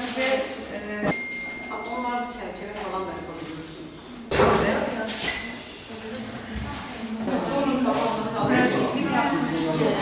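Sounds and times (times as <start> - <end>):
people talking in large room: 0.0 - 10.0.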